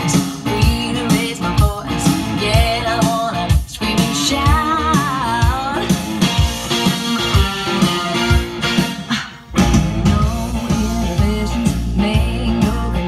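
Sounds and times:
guitar-led rock music from tape: 0:00.0 - 0:13.0.

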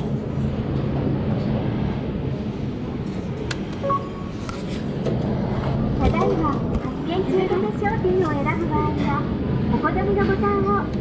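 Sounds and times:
busy indoor hall din: 0:00.0 - 0:11.0
short high beep: 0:03.8 - 0:04.3.

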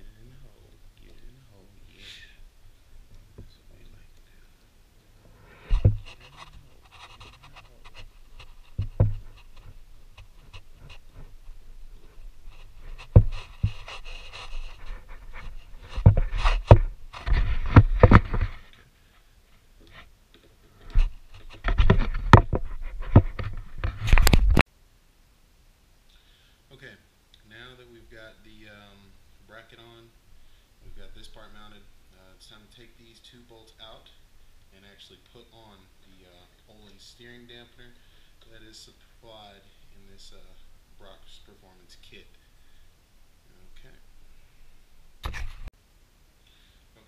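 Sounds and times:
close-up rubbing and rustling: 0:00.0 - 0:24.7, 0:27.5 - 0:42.9, 0:43.5 - 0:45.8.

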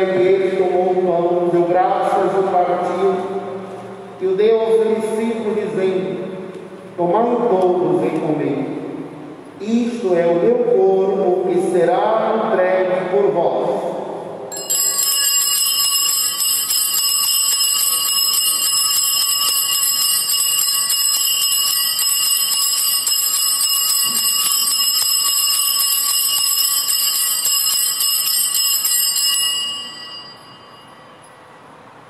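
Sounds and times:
altar bells jangling: 0:14.5 - 0:31.5.

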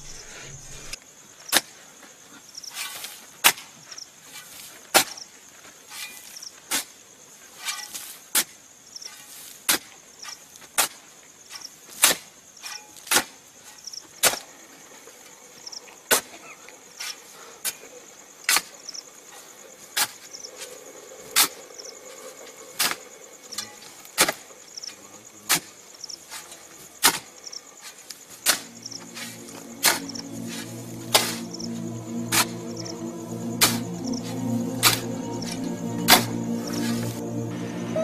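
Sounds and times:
crickets chirping: 0:00.0 - 0:38.0
digging tools striking earth: 0:26.3 - 0:28.7.

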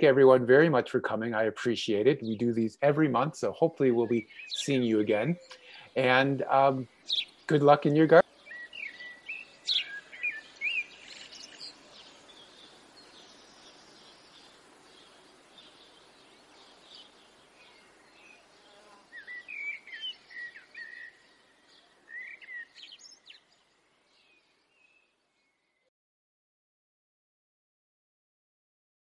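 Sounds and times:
faint steady hiss: 0:00.0 - 0:24.8
small birds chirping: 0:01.9 - 0:25.9.

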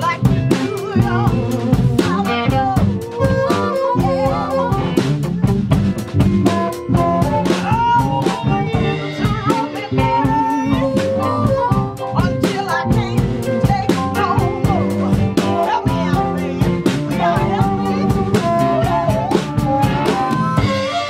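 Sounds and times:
bass guitar: 0:00.0 - 0:21.0
drum kit beat: 0:00.0 - 0:21.0
electric guitar: 0:00.0 - 0:21.0
harmonica lead line: 0:00.0 - 0:21.0.

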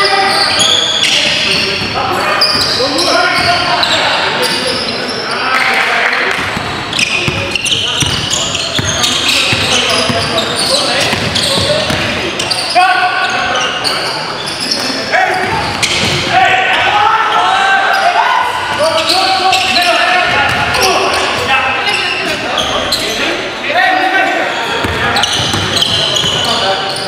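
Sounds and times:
players calling out: 0:00.0 - 0:27.0.

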